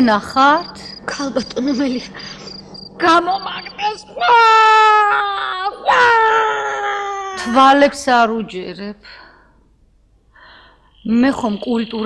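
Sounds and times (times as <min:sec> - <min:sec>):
woman wailing and crying: 0:04.2 - 0:07.8.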